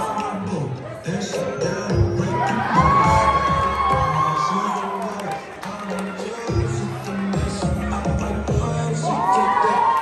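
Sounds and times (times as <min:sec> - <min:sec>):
dance music with bass line: 0:00.0 - 0:10.0
high shout: 0:02.2 - 0:06.5, 0:09.0 - 0:10.0
crowd cheering: 0:02.2 - 0:10.0.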